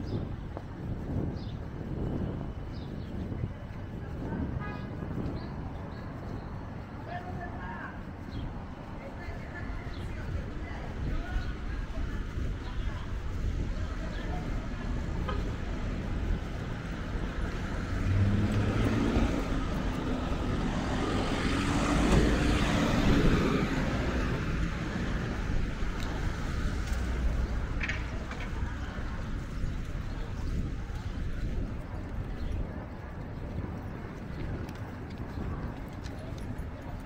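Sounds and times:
city street traffic: 0.0s - 37.0s
vehicle passing close by: 16.5s - 27.9s.

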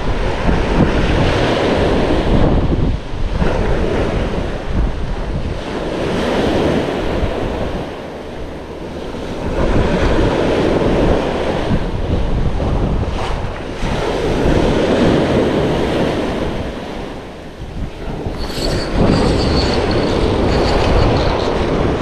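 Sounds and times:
sea surf breaking on shore: 0.0s - 19.1s
wind buffeting microphone: 0.0s - 22.0s
high thin squeal pulses: 18.2s - 22.0s.

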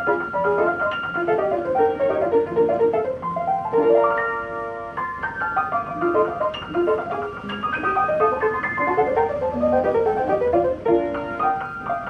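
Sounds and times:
player piano playing: 0.0s - 12.0s.

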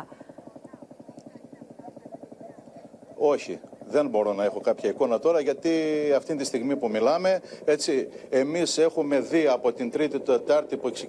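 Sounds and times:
helicopter rotor chopping: 0.0s - 11.0s.

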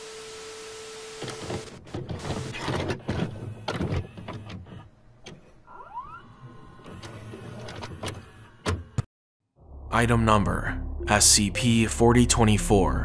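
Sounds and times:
tape recorder mechanism whirring: 1.0s - 9.0s.

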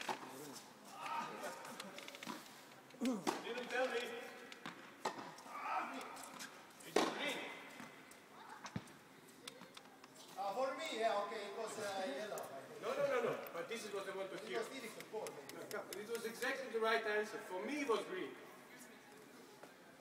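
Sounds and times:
tennis balls hit by rackets: 0.0s - 9.7s.

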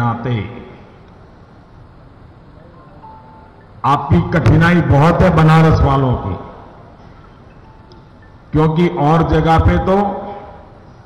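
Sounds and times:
man's amplified voice: 0.0s - 0.9s, 3.8s - 6.6s, 8.5s - 10.6s
public address background noise: 0.0s - 11.0s
faint high tone: 2.5s - 3.8s.

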